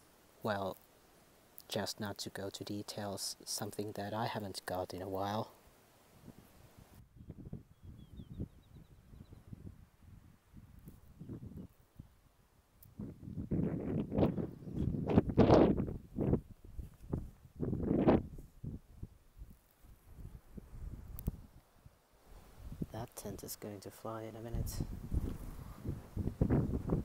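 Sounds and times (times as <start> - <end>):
wind buffeting microphone: 6.2 - 12.2, 12.9 - 21.6, 22.4 - 23.0, 24.5 - 27.0.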